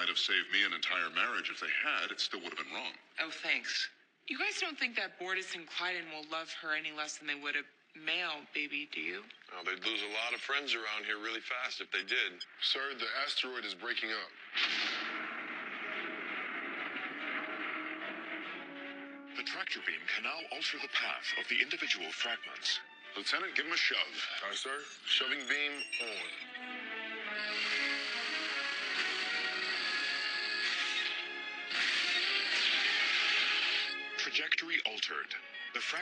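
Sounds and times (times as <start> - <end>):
orchestral film score: 25.2 - 34.6
rushing hissing noise: 27.4 - 30.1.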